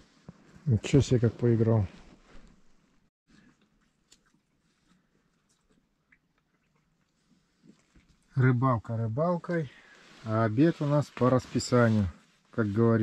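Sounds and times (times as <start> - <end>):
faint rustles: 0.0 - 5.9, 9.4 - 13.0.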